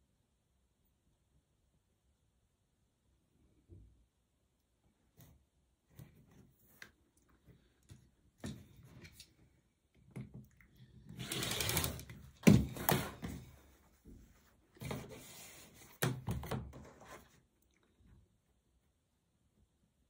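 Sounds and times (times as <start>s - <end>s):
ruler and fabric sliding and rustling: 11.1s - 17.5s.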